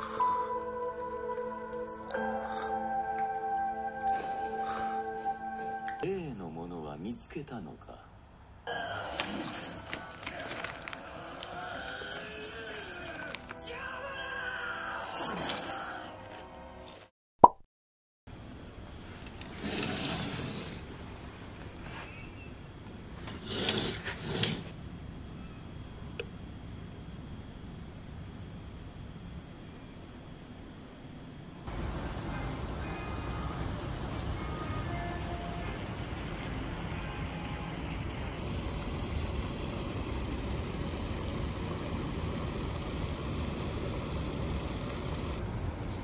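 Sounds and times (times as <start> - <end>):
bright pop sound effect: 17.4 - 17.6
wind: 18.3 - 46.0
pool water hissing: 31.7 - 34.1, 37.9 - 45.5
distant city traffic: 31.7 - 46.0.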